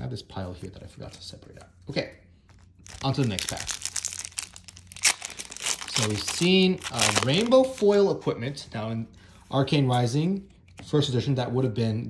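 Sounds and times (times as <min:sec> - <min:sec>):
foil wrapper tearing and crinkling: 0:02.5 - 0:08.0.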